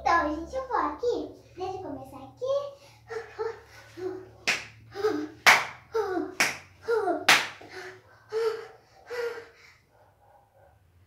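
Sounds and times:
sharp hand claps: 4.4s - 4.8s, 5.4s - 7.8s.

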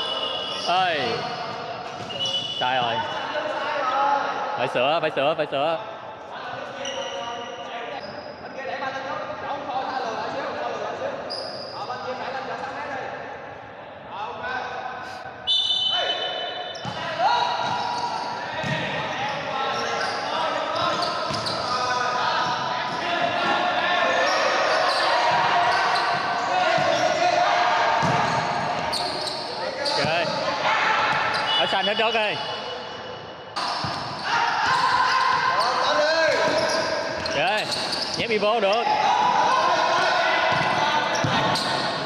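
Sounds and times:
players' voices: 0.0s - 42.0s.

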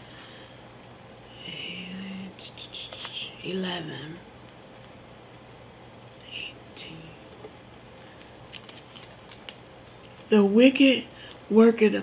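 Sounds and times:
woman whispering softly: 1.3s - 3.7s, 6.2s - 7.3s.

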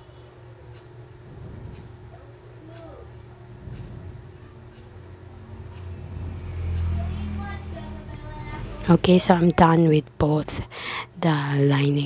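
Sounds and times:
low rumble: 5.2s - 10.2s.

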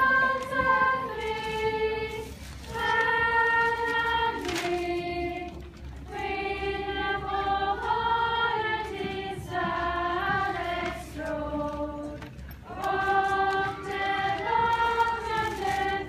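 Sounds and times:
girls' choir singing unaccompanied: 0.0s - 16.0s.

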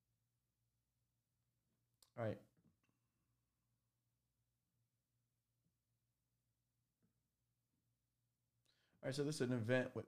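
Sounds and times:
man speaking: 9.0s - 10.0s.

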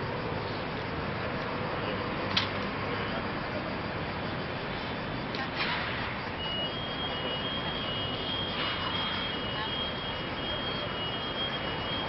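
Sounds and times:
city traffic noise: 0.0s - 12.0s.

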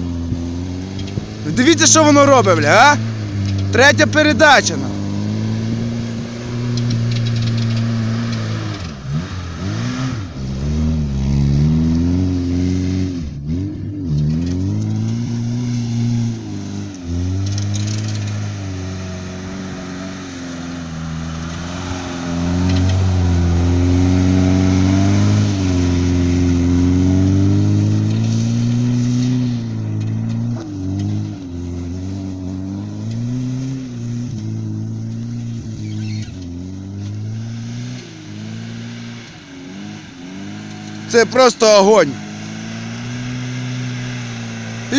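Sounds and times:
car engine revving hard: 0.0s - 44.9s.

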